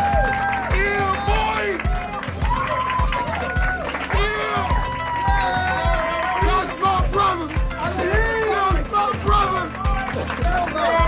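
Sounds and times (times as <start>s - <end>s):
steady kick-drum beat: 0.0s - 11.0s.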